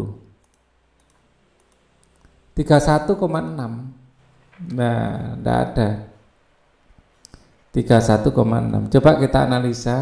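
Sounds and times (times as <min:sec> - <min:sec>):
faint computer mouse clicks: 0:00.4 - 0:02.4.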